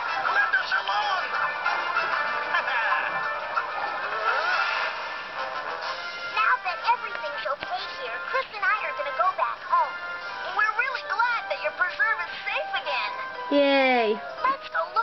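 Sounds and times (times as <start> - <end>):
cartoon background music: 0.0 - 15.0.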